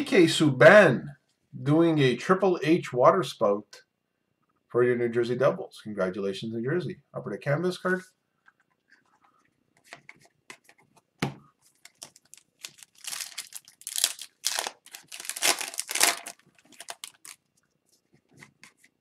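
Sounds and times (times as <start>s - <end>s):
foil wrapper tearing and crinkling: 11.7s - 17.5s.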